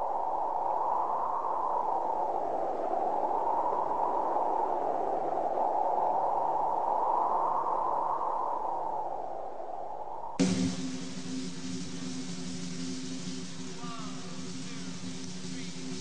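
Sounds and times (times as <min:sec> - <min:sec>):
soft muffled rushing noise: 0:10.4 - 0:16.0
steady low hum: 0:10.4 - 0:16.0.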